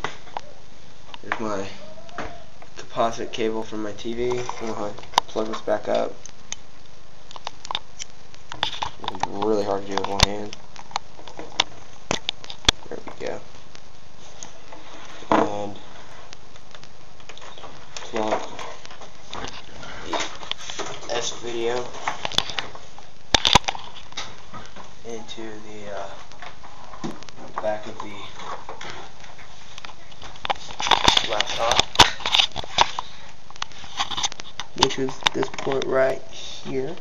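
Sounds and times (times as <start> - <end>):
steady background hiss: 0.0 - 37.0.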